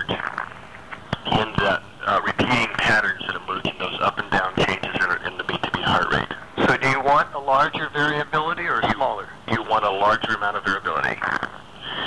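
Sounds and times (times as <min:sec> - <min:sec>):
person talking: 0:00.0 - 0:12.0.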